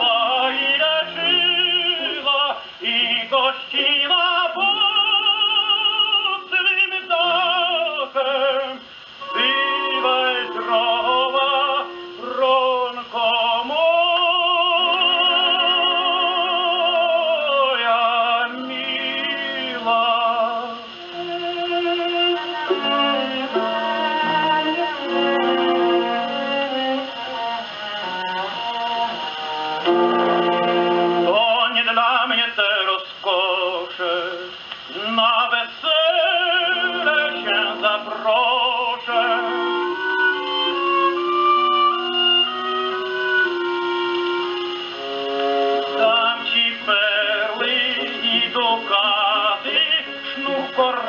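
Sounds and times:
orchestra on gramophone record: 0.0 - 51.0
tenor singing operatic aria: 0.0 - 51.0.

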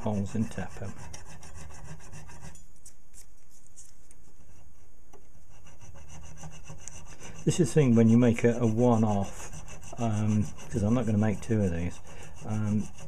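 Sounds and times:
file scraping metal: 0.0 - 2.6, 5.5 - 13.0.

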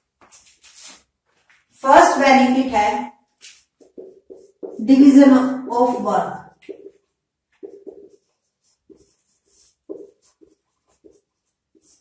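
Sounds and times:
marker squeaking on whiteboard: 3.4 - 5.4, 6.5 - 12.0.

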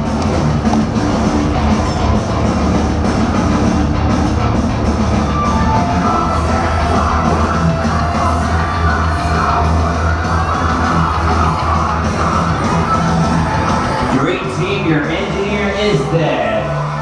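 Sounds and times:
loud music with heavy bass: 0.0 - 17.0.

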